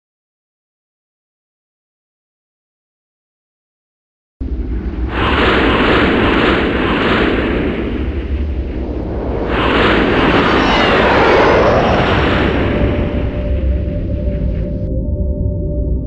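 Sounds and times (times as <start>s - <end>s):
spaceship engine rumble: 4.4s - 16.0s
sweeping whooshes: 4.6s - 14.9s.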